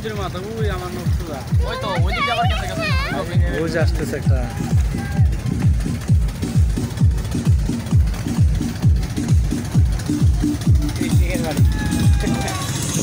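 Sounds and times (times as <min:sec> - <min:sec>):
deep kick drum: 0:01.5 - 0:12.5.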